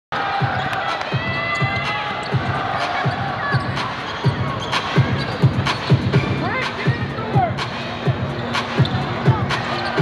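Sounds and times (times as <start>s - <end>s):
crowd hum: 0.2s - 10.0s
voices: 0.4s - 10.0s.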